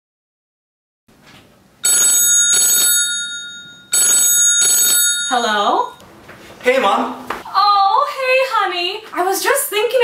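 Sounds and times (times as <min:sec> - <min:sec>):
phone ringing with bell ring: 0:01.8 - 0:06.0.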